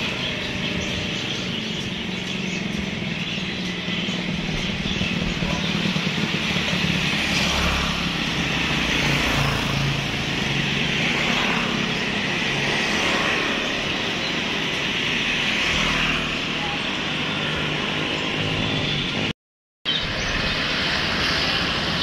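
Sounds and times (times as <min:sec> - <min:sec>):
motor traffic passing: 0:00.0 - 0:19.3, 0:19.9 - 0:22.0
people talking: 0:16.5 - 0:17.6.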